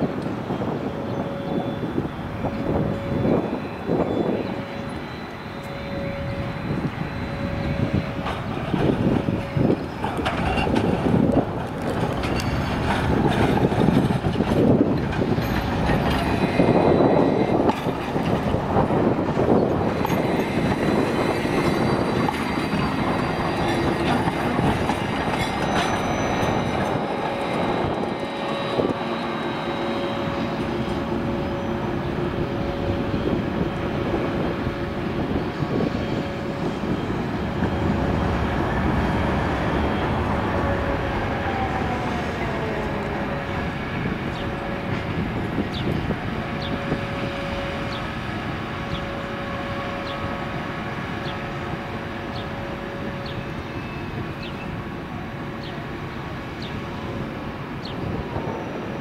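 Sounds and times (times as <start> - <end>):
tram wheels rumbling on rails: 0.0 - 59.0.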